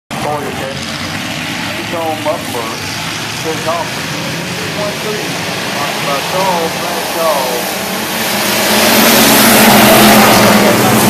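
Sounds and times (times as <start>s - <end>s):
race car engines droning: 0.1s - 11.0s.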